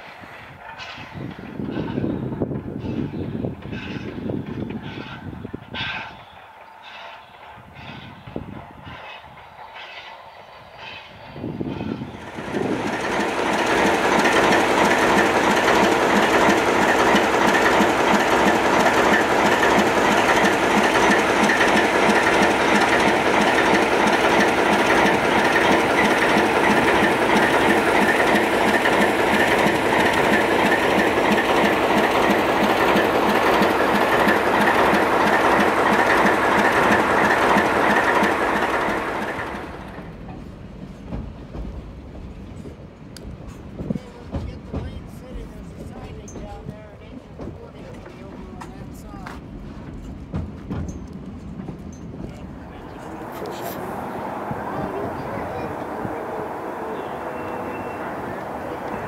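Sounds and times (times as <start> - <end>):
diesel locomotive engine running: 0.0 - 59.0.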